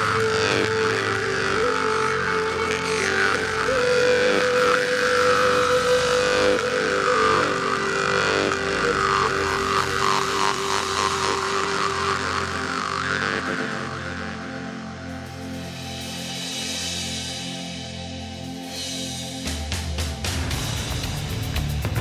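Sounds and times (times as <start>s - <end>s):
jaw harp twanging drone: 0.0s - 19.1s.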